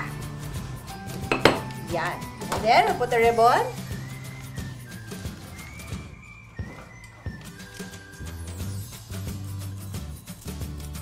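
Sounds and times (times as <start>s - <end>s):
background music: 0.0s - 11.0s
glass jar clink: 1.0s - 1.9s.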